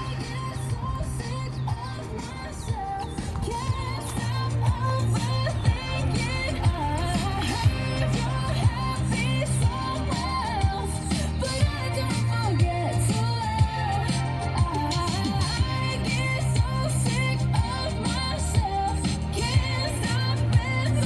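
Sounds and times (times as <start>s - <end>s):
pop music with steady bass: 0.0s - 21.0s.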